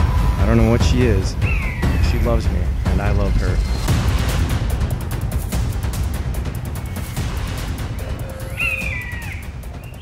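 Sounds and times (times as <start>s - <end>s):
low rumbling music: 0.0s - 10.0s
bird squawk falling pitch: 1.4s - 2.0s, 8.1s - 10.0s.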